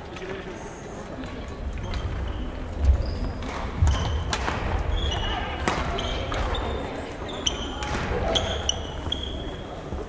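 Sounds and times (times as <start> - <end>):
voices chattering: 0.0 - 10.0
shoes squeaking on wooden floor: 1.8 - 4.2, 4.9 - 10.0
racket hitting shuttlecock: 3.4 - 6.5.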